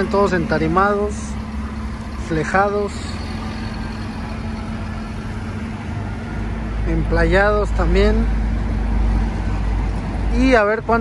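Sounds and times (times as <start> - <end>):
forklift engine running: 0.0 - 11.0.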